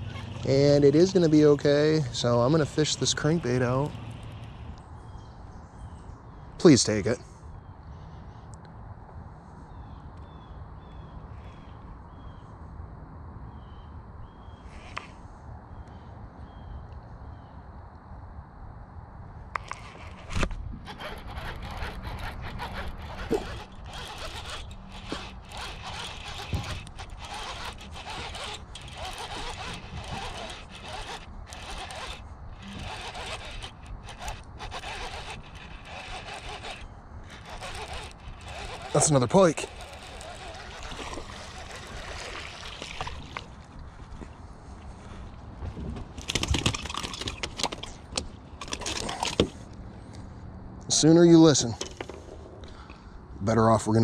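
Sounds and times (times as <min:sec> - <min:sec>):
fishing reel and handling noise: 0:00.0 - 0:04.9, 0:19.5 - 0:45.2, 0:46.2 - 0:50.2
rustling and scraping: 0:19.6 - 0:50.4.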